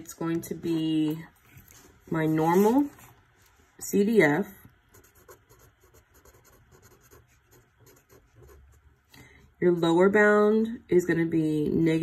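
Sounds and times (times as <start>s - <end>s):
marker pen writing on paper: 4.9s - 8.9s.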